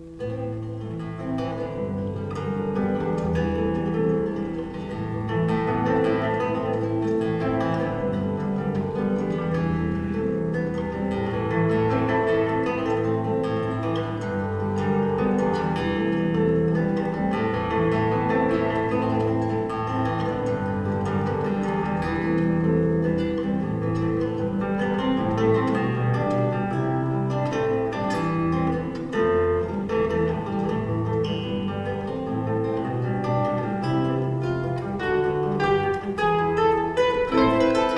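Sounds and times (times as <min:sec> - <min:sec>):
harp and guitar duet: 0:00.0 - 0:37.9.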